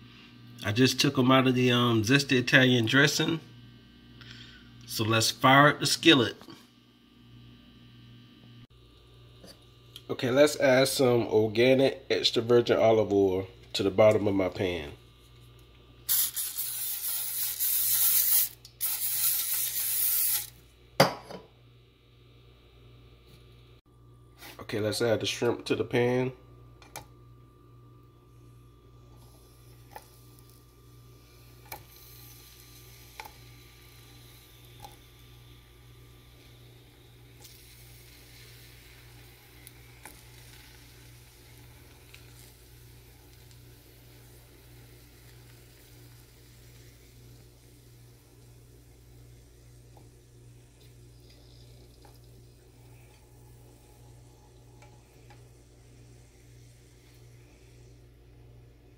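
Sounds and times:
cooking spray hissing: 0:16.1 - 0:20.6, 0:29.1 - 0:58.4.

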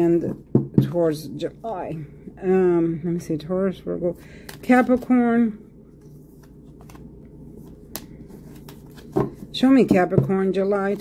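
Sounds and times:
cards being shuffled: 0:06.0 - 0:09.5
cards snapping: 0:07.9 - 0:09.1.

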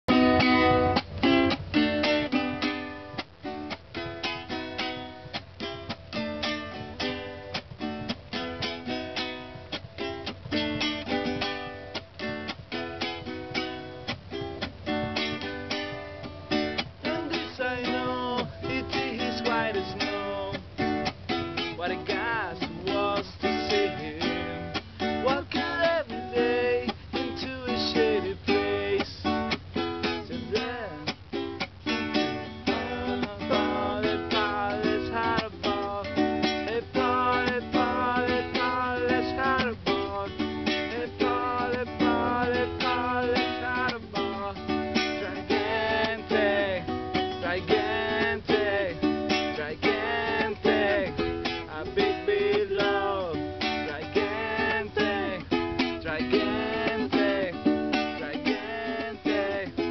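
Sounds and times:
cuatro strummed chords: 0:00.0 - 0:59.9.

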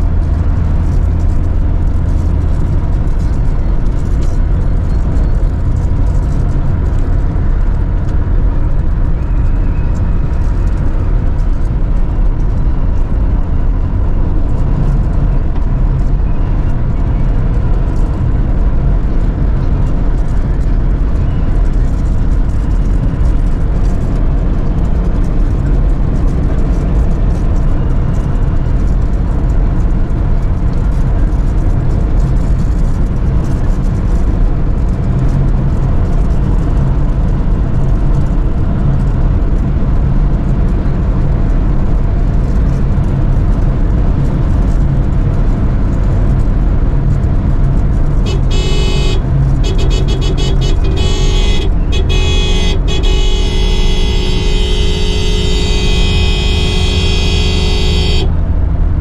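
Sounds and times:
road and wind noise: 0:00.0 - 0:59.0.

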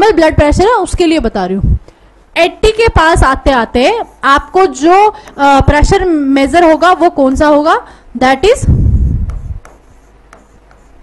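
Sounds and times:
stylus scratching on screen: 0:03.0 - 0:05.0, 0:08.5 - 0:11.0.

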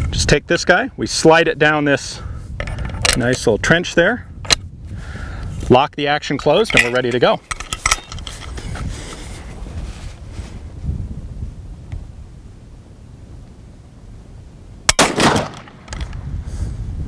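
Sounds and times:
loud rifle shot: 0:14.9 - 0:16.0.

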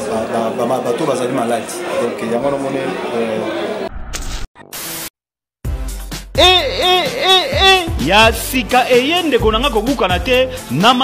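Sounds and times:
advert music: 0:05.6 - 0:10.8.

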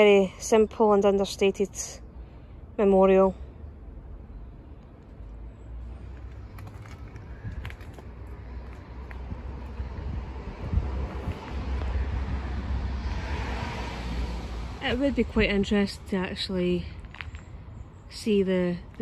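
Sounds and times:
road traffic: 0:00.0 - 0:19.0
vehicle passing: 0:05.3 - 0:17.3.

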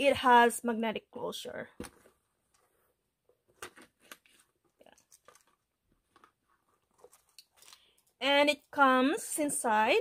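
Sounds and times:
handbag clicks and rustles: 0:04.1 - 0:08.2.

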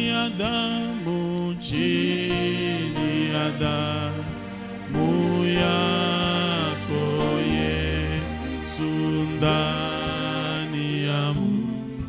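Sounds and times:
low accompanying tone: 0:00.0 - 0:12.0
man singing worship song: 0:00.0 - 0:12.0.

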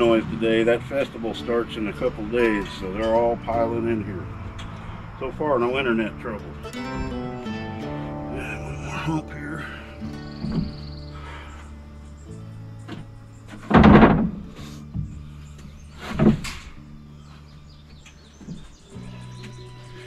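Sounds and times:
background music with held chords: 0:00.0 - 0:20.0
heavy thuds on wooden framing: 0:10.4 - 0:11.4, 0:12.9 - 0:15.4, 0:16.0 - 0:16.8, 0:18.4 - 0:18.8.

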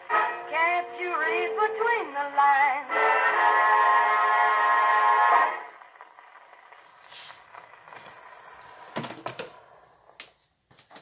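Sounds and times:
dance band chord on phonograph: 0:00.0 - 0:06.0
record surface hiss: 0:00.0 - 0:11.0.

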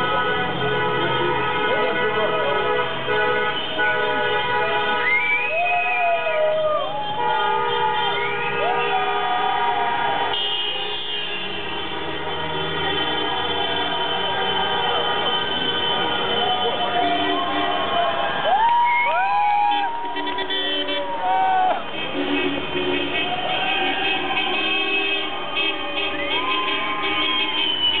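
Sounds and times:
many horns sounding: 0:00.0 - 0:28.0
crowd cheering: 0:03.8 - 0:11.6, 0:12.2 - 0:28.0
long whoops: 0:05.0 - 0:07.0, 0:08.2 - 0:10.2, 0:16.4 - 0:20.2, 0:21.0 - 0:21.8, 0:26.2 - 0:28.0.

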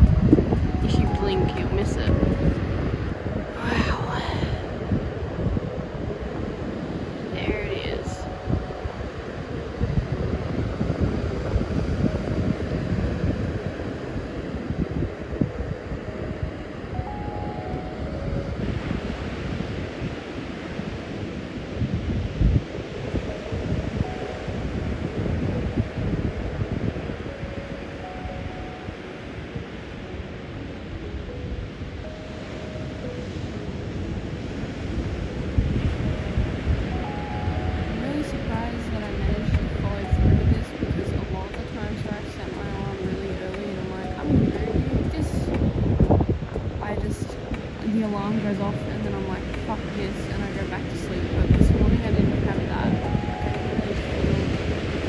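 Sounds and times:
ocean surf washing onto beach: 0:00.0 - 0:55.0
wind buffeting microphone: 0:00.0 - 0:55.0.

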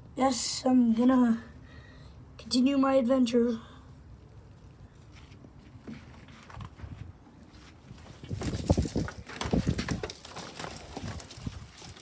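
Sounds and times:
thumps and rustling of handled objects: 0:05.0 - 0:12.0.

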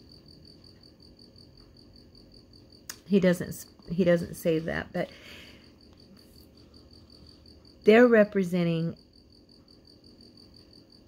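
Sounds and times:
high-pitched insect chirping: 0:00.0 - 0:11.0.

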